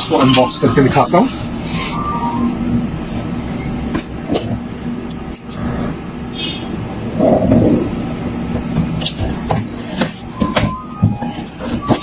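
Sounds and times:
low rumble: 0:05.5 - 0:08.4.

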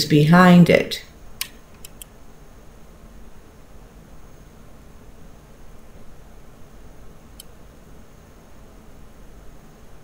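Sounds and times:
faint room hiss: 0:00.0 - 0:10.0
computer mouse clicks: 0:01.4 - 0:02.1, 0:07.3 - 0:07.6.

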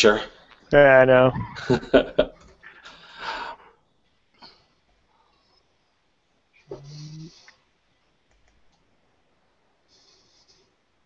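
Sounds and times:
faint clicks: 0:08.2 - 0:08.9.

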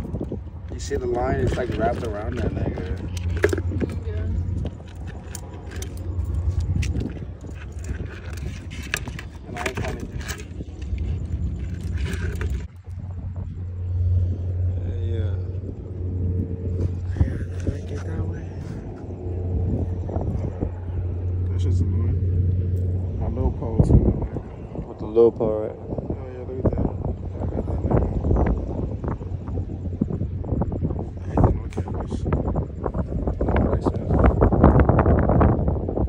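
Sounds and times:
steady low hum: 0:00.0 - 0:36.0
muffled voices: 0:16.7 - 0:22.2.

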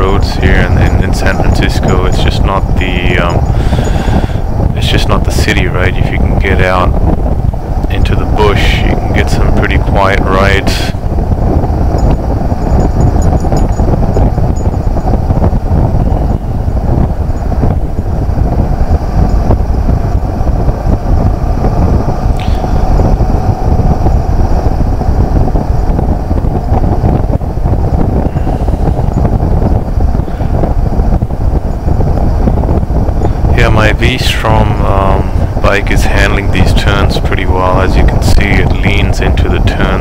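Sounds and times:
road noise: 0:00.0 - 0:37.4
wind rushing on microphone: 0:00.0 - 0:40.0.

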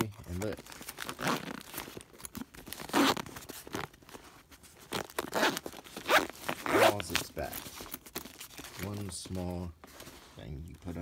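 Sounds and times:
fabric pouch zipper: 0:01.0 - 0:03.9, 0:04.8 - 0:07.4.

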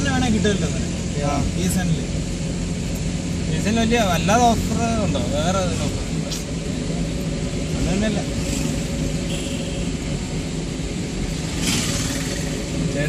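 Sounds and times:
car engine and road noise: 0:00.0 - 0:13.0.

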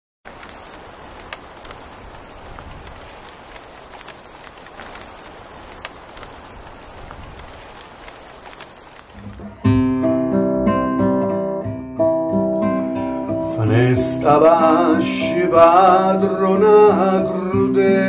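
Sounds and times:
rain falling: 0:00.2 - 0:10.2, 0:13.5 - 0:17.5
sharp raindrop ticks: 0:00.3 - 0:09.6.

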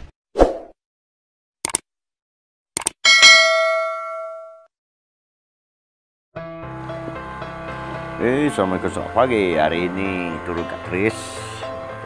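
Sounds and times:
bright bell ding: 0:03.1 - 0:04.7.

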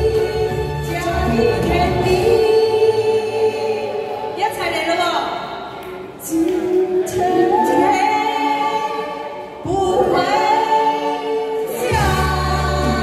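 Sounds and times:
women singing pop song: 0:00.0 - 0:04.7, 0:06.2 - 0:13.0
backing track: 0:00.0 - 0:13.0.

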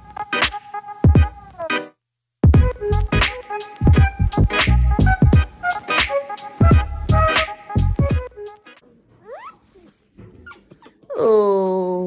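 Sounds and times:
baby soft vocal sounds: 0:09.1 - 0:12.0
baby squealing: 0:09.2 - 0:11.1.

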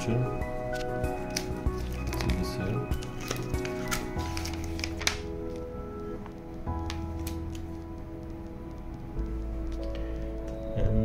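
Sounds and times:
background music with held tones: 0:00.0 - 0:11.0
paper leaflet rustling: 0:00.5 - 0:05.7.

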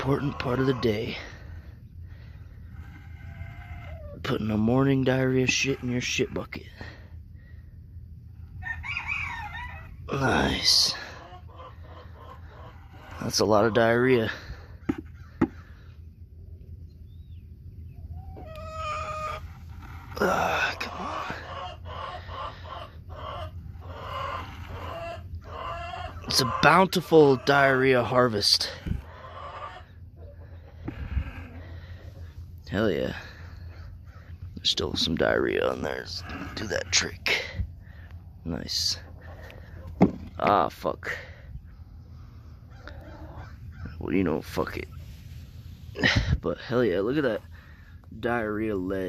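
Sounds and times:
chickens clucking: 0:00.0 - 0:07.3, 0:08.0 - 0:17.0, 0:17.6 - 0:49.0
farm animal call: 0:00.0 - 0:07.6, 0:08.4 - 0:16.0, 0:18.0 - 0:41.4, 0:42.1 - 0:46.2.

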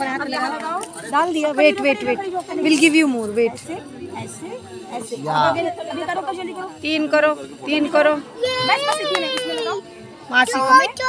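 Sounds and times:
surrounding chatter: 0:00.0 - 0:11.0.

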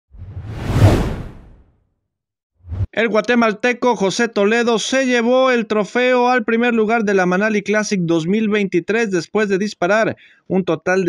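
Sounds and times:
low rumble: 0:00.1 - 0:01.6
whoosh transition effect: 0:00.1 - 0:01.6, 0:02.7 - 0:02.9.

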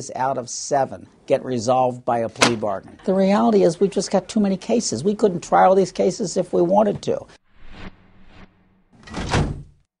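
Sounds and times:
metal drawer sliding shut: 0:09.0 - 0:09.8.

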